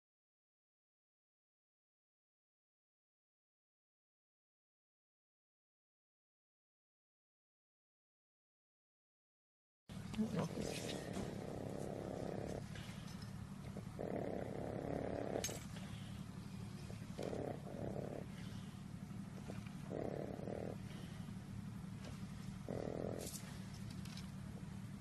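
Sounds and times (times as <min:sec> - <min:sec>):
pet low rumbling: 0:09.9 - 0:25.0
pet moaning: 0:10.0 - 0:25.0.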